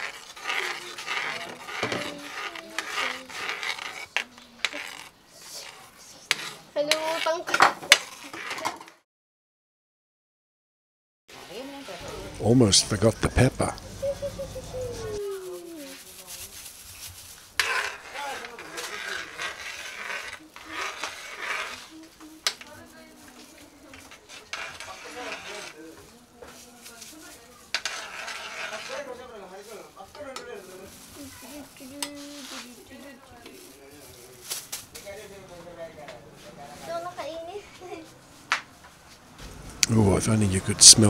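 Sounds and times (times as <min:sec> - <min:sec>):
utensil scraping metal wok: 0:00.0 - 0:08.9, 0:11.3 - 0:13.7, 0:14.9 - 0:26.0, 0:27.0 - 0:33.0.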